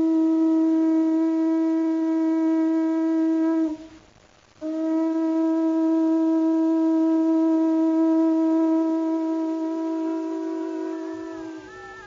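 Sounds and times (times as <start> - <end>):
conch shell blown: 0.0 - 12.0.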